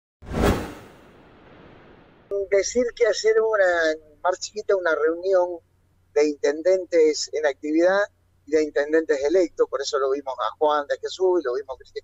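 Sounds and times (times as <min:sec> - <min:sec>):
whoosh: 0:00.2 - 0:02.3
faint hiss: 0:01.0 - 0:12.0.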